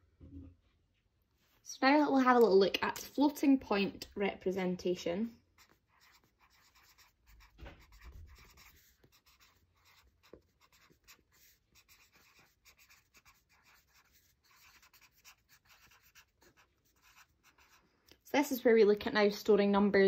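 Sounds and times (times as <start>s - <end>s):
marker scratching on paper: 5.5s - 17.9s.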